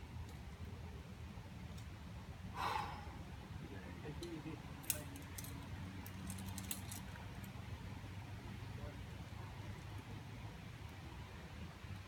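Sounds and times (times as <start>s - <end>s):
metal climbing hardware clinking: 4.2s - 7.1s.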